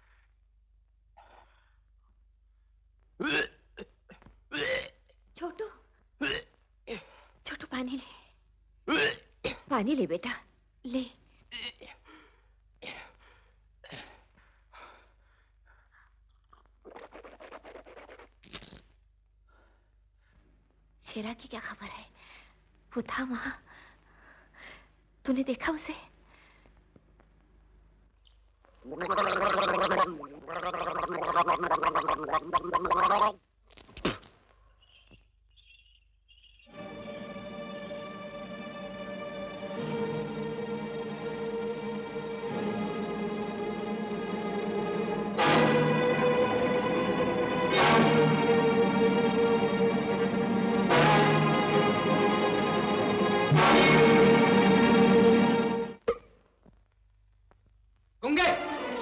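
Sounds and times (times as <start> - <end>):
voice making quavering sound: 28.8 - 33.4.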